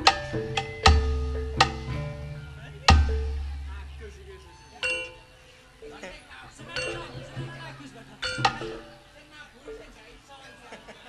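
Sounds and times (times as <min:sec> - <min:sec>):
struck bronze gamelan note: 0:00.0 - 0:04.2.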